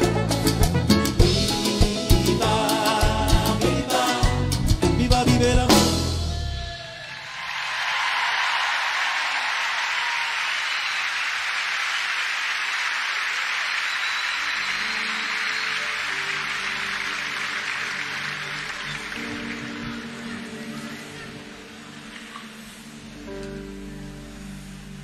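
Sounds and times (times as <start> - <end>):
audience applauding: 7.1 - 21.4.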